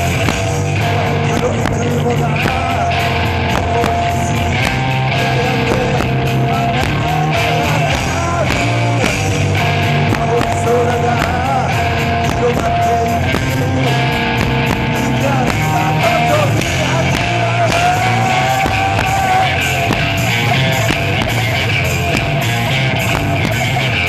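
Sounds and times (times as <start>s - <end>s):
drum kit beat: 0.0s - 24.0s
electric guitars: 0.0s - 24.0s.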